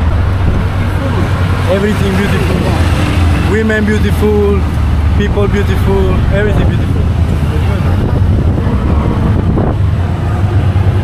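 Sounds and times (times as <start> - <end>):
wind on microphone: 0.0 - 3.5, 4.6 - 11.0
auto-rickshaw engine rumble: 0.0 - 11.0.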